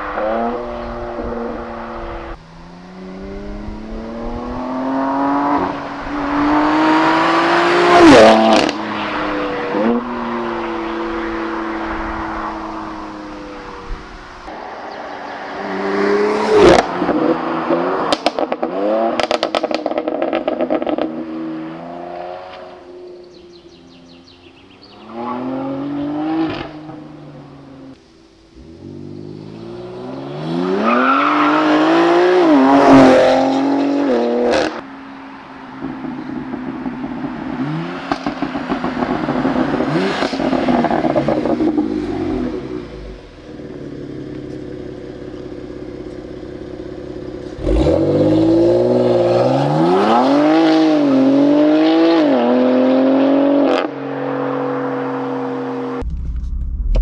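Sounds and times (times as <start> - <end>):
car engine accelerating hard: 0.0 - 15.0, 36.1 - 57.0
exhaust crackling: 35.8 - 50.0, 55.9 - 57.0.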